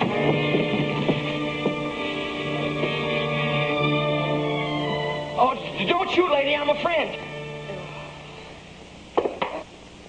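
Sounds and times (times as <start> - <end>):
film score music: 0.0 - 9.1.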